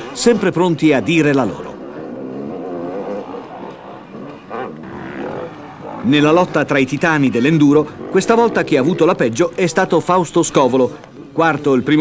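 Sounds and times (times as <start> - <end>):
motorcycle engine revving: 1.9 - 9.1.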